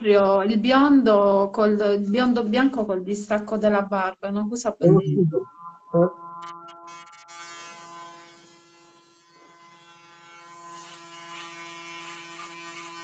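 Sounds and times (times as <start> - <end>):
electric hair clippers humming: 6.4 - 13.0.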